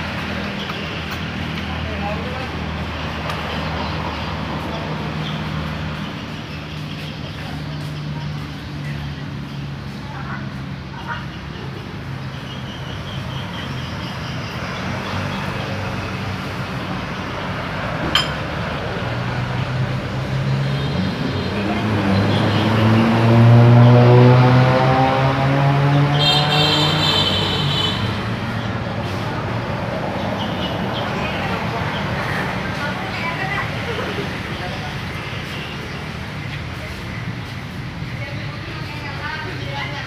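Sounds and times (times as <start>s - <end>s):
vehicle engine revving: 17.7s - 30.9s.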